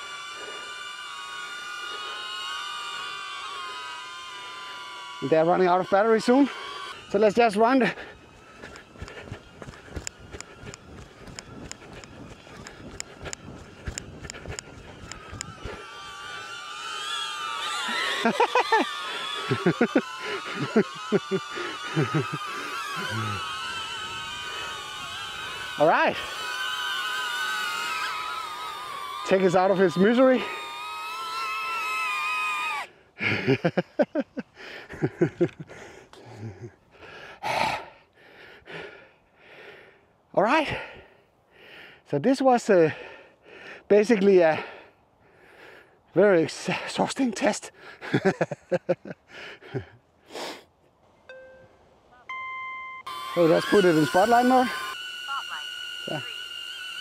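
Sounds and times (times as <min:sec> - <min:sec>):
drone propellers whining: 0:00.0 - 0:34.4, 0:51.3 - 0:57.0
running footsteps on grass: 0:05.2 - 0:16.5
man laughing: 0:15.6 - 0:26.4, 0:33.2 - 0:37.8, 0:46.5 - 0:50.0
man gasping for breath: 0:35.6 - 0:40.1.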